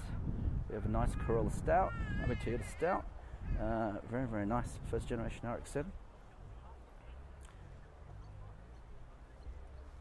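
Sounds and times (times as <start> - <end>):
faint click: 7.4 - 7.6.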